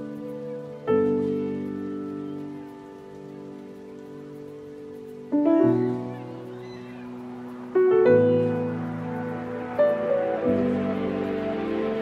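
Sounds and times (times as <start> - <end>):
soft piano chord: 0.0 - 12.0.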